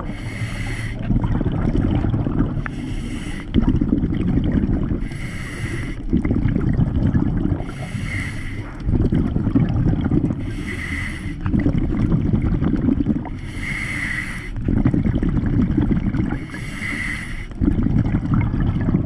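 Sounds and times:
bubbling exhaled air: 0.0s - 19.0s.

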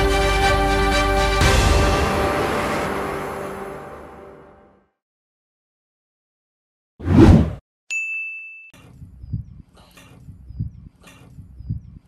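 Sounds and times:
short loud whoosh: 7.0s - 7.6s
bright ding: 7.9s - 8.8s.

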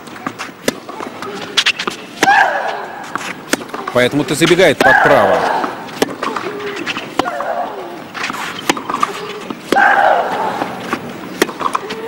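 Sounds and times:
racquets striking tennis ball: 0.0s - 12.0s
player shrieking: 9.8s - 10.6s.

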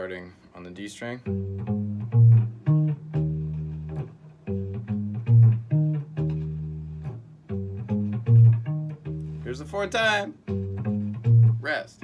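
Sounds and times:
acoustic bass guitar riff: 1.2s - 12.0s.

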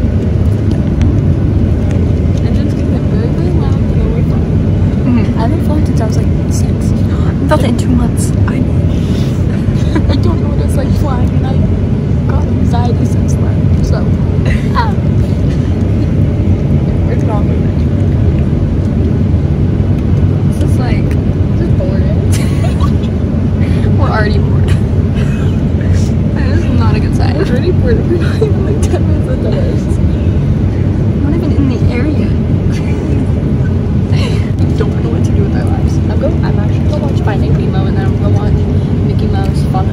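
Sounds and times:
jet engines rumbling: 0.0s - 39.9s.

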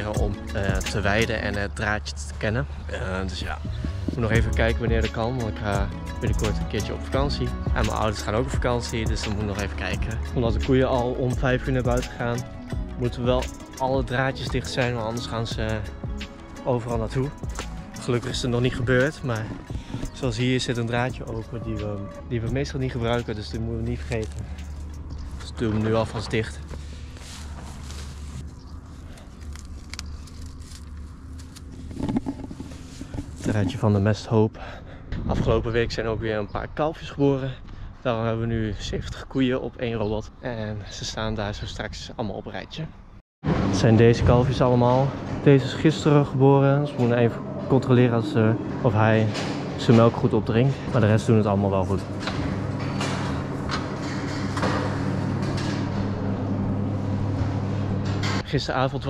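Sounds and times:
steady low rumble: 0.0s - 36.8s, 43.4s - 46.5s, 47.2s - 59.0s
low mechanical hum: 11.2s - 35.0s, 43.5s - 59.0s
fence rope clicks and rustles: 29.0s - 33.6s.

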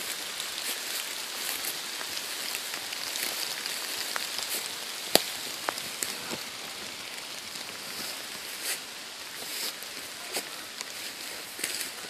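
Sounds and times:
rain pattering on leaves: 0.0s - 12.0s.

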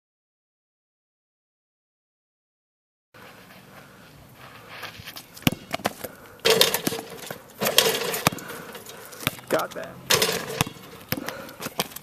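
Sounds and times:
scuffing and rustling: 3.2s - 6.2s
basketball bouncing on hard court: 5.4s - 8.6s, 9.2s - 12.0s.

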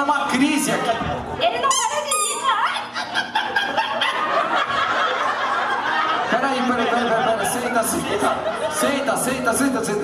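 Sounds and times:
high squeaky chirps: 1.7s - 2.7s
audience laughing: 2.4s - 9.5s.

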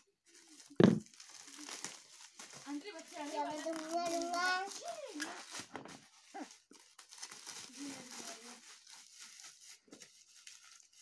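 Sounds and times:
bubble wrap crinkling: 0.0s - 11.0s.

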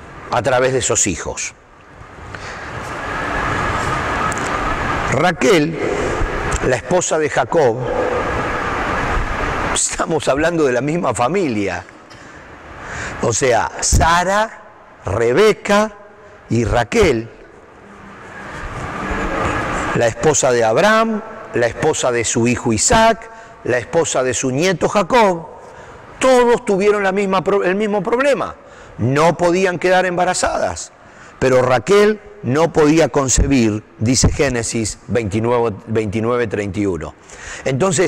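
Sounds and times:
steady rushing noise with whine: 0.0s - 38.0s.

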